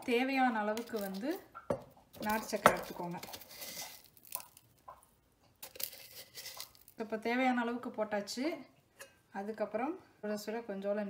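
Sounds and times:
powder rustling: 0.6s - 1.5s, 2.1s - 7.1s
spoon scraping in steel tin: 0.7s - 1.5s, 2.2s - 4.2s, 5.6s - 7.0s.

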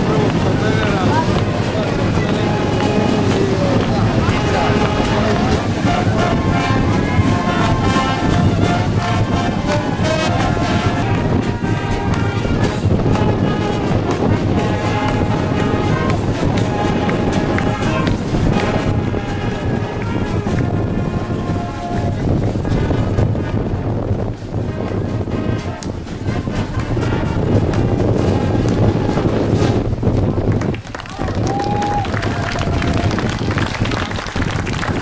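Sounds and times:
crowd chatter: 0.0s - 35.0s
wind orchestra playing: 0.0s - 35.0s.

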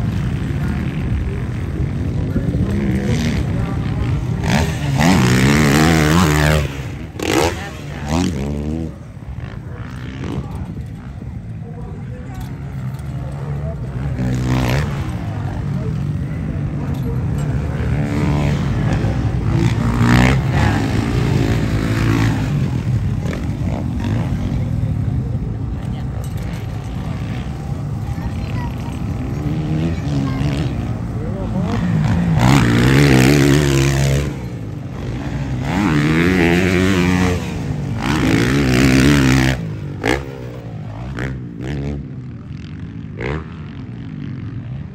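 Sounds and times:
dirt bike engines revving: 0.0s - 44.9s.

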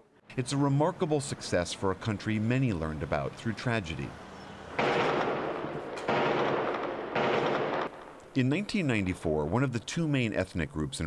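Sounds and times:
gunshot blasts: 4.8s - 8.1s.

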